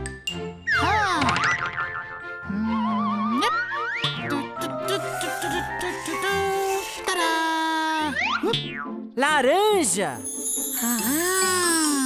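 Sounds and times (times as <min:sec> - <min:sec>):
children's background music: 0:00.0 - 0:12.0.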